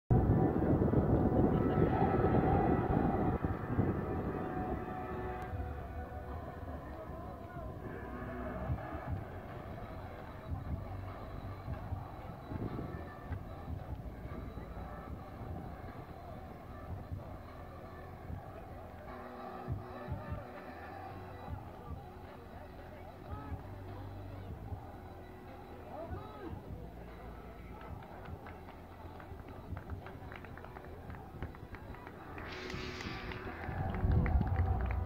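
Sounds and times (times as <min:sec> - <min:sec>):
wind rumbling on microphone: 0:00.1 - 0:17.4, 0:31.0 - 0:35.0
faint voices: 0:00.1 - 0:35.0.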